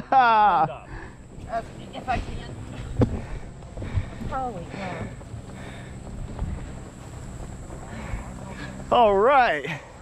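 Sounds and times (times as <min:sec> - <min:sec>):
wind buffeting microphone: 0:00.9 - 0:10.0.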